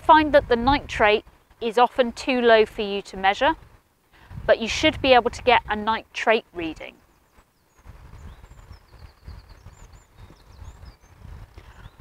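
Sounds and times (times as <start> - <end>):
low uneven rumble: 0.0 - 12.0
faint birdsong chirps: 6.0 - 12.0.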